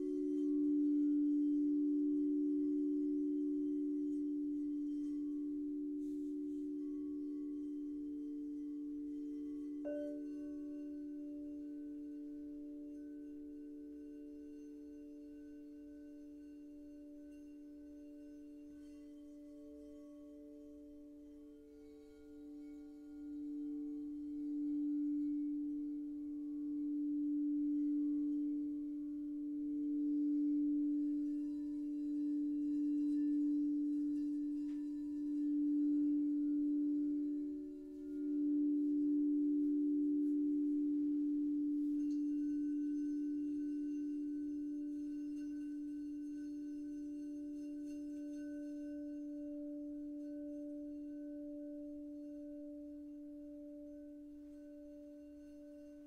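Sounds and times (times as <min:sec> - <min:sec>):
crystal singing bowls ringing: 0:00.0 - 0:56.0
higher bowl tone: 0:00.0 - 0:56.0.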